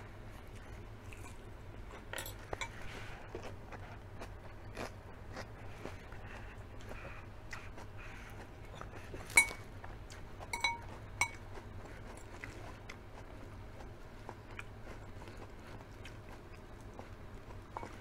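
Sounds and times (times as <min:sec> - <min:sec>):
close-miked chewing: 0:00.0 - 0:18.0
fork clinking on ceramic bowl: 0:09.3 - 0:09.6, 0:10.5 - 0:11.4, 0:17.8 - 0:18.0
fork clicking through salad: 0:09.3 - 0:11.4.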